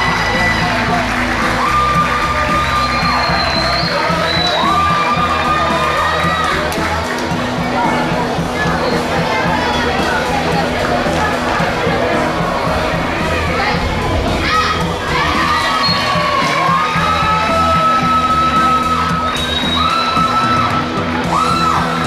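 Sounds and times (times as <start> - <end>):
crowd cheering and shouting: 0.0 - 22.0
music with steady beat: 0.0 - 22.0.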